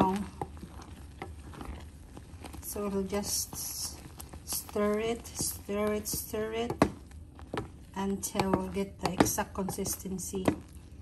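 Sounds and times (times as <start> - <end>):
mixture boiling in a pot: 0.0 - 11.0
wooden spoon stirring: 0.0 - 11.0.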